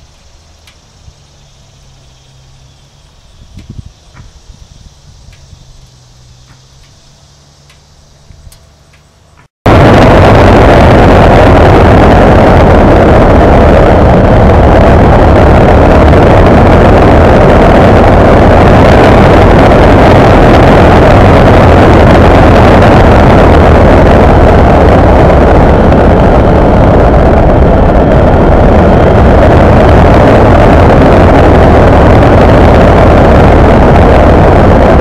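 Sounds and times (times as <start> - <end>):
motorcycle engine running: 0.0 - 9.5
wind rush on microphone: 0.0 - 35.0.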